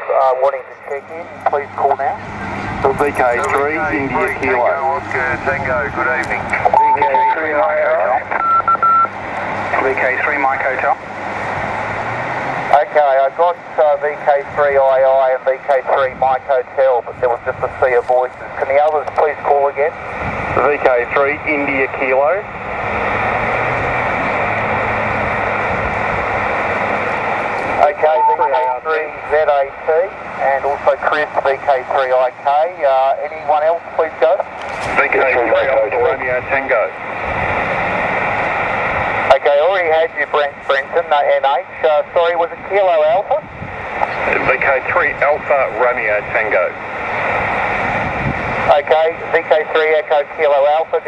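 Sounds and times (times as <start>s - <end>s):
voice through radio: 0.0s - 8.4s, 9.7s - 11.0s, 12.7s - 20.0s, 20.6s - 22.5s, 27.7s - 37.0s, 39.2s - 46.8s, 48.6s - 51.0s
radio band noise hiss: 0.0s - 11.2s, 12.7s - 22.5s, 26.8s - 51.0s.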